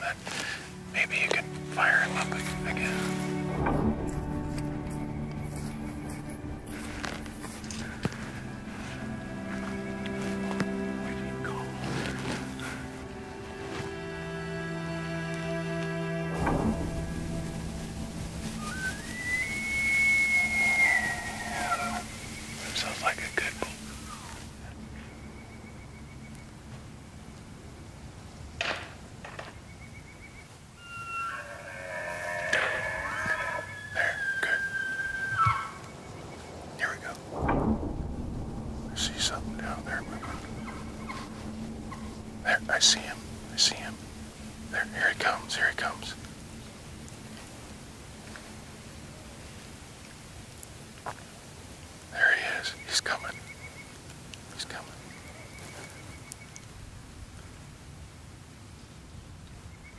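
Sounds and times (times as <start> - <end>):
elk bugling: 0.0 - 25.8, 30.8 - 36.0, 36.8 - 49.6
soft sad background music: 0.0 - 27.9, 35.9 - 49.8, 52.1 - 53.2.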